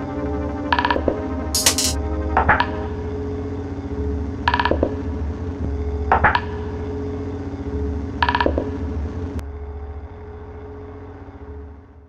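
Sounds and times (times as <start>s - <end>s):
low bass drone: 0.0s - 12.0s.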